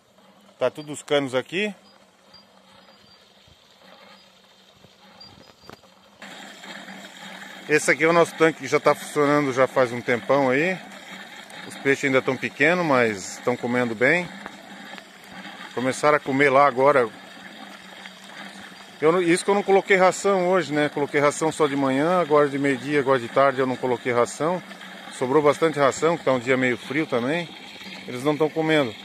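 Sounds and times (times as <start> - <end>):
water jetting into fish tank: 0.0 - 29.0.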